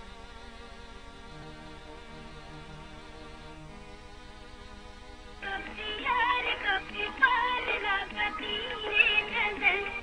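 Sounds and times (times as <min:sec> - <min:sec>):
dance music: 0:05.4 - 0:10.0
person singing with sliding pitch: 0:05.4 - 0:10.0.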